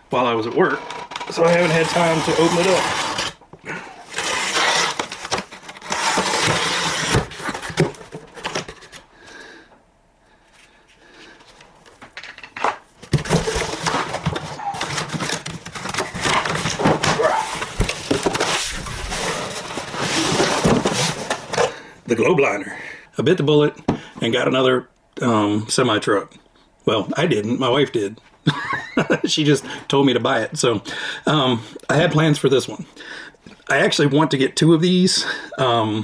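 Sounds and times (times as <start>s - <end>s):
blade slitting packing tape: 4.1s - 7.5s
cardboard flaps rustling: 4.1s - 9.0s, 13.0s - 21.7s.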